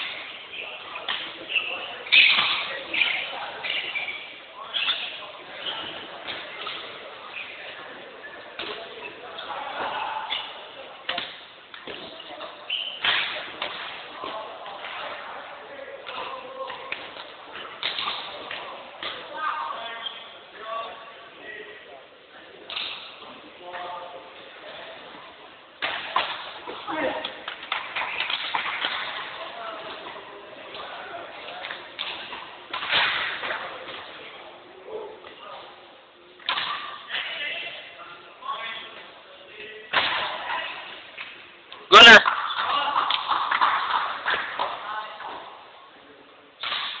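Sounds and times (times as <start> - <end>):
chatter of voices in echoing hall: 0.0 - 47.0.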